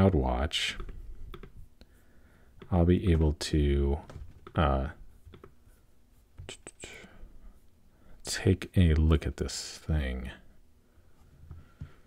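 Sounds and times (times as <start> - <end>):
man breathing: 1.8 - 2.6, 10.8 - 12.0.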